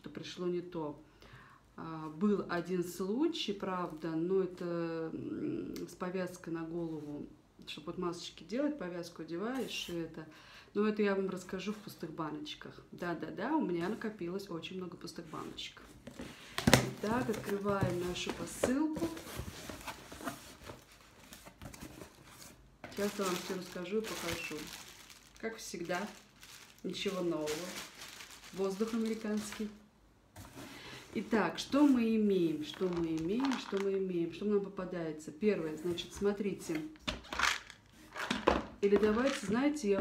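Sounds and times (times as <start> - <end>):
cardboard rustling: 15.9 - 29.8
plastic bottles clattering: 16.6 - 20.9, 22.8 - 29.6, 32.7 - 33.9, 37.0 - 40.0.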